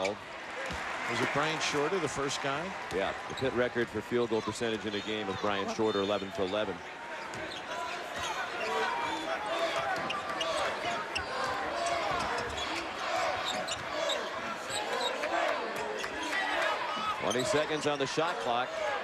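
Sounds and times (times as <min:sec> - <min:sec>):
sneakers squeaking: 0:06.0 - 0:17.8.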